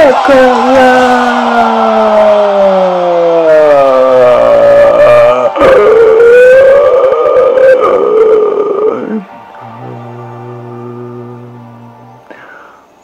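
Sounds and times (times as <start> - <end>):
man singing long notes: 3.3 - 12.4.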